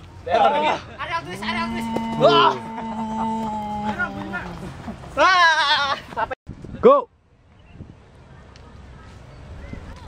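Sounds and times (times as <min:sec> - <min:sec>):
person's quavering bleat-like cry: 0:01.5 - 0:04.5.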